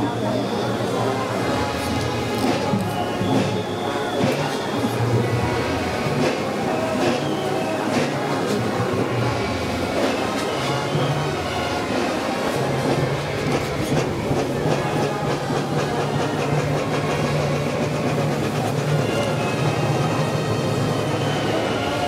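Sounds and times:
band playing slow funeral march: 0.0 - 22.0
low brass long notes: 0.0 - 22.0.

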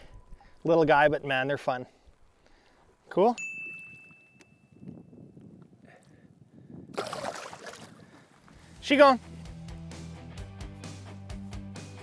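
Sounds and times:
thin high tone: 3.3 - 4.8
water sloshing and gurgling: 6.9 - 8.5
fish splashing water: 7.0 - 8.2.

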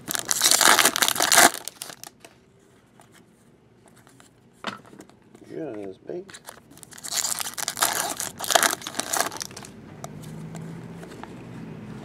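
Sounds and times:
foil wrapper tearing and crinkling: 0.0 - 2.2, 6.4 - 9.7.

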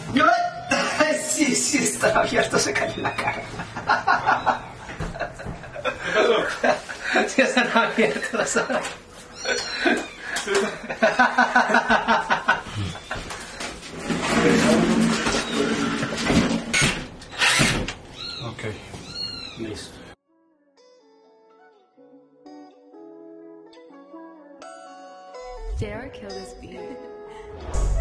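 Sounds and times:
people talking: 0.2 - 3.2, 25.7 - 27.0
high squeals: 1.8 - 4.9
laughter: 3.0 - 13.4
soft background music: 20.8 - 28.0.

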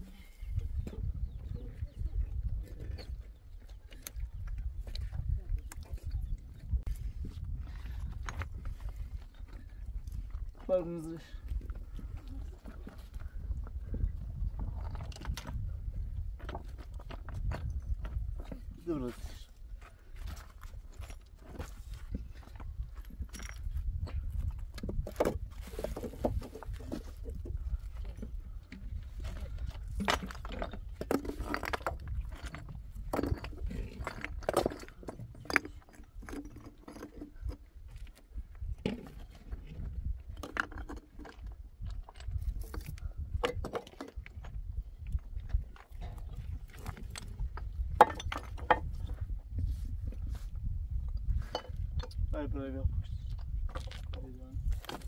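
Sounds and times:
stones knocking and scraping: 0.6 - 55.0.

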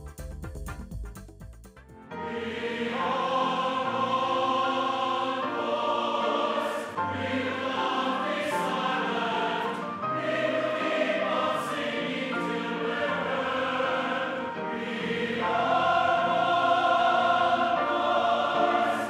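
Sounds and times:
choir singing sustained chords: 2.0 - 19.0.

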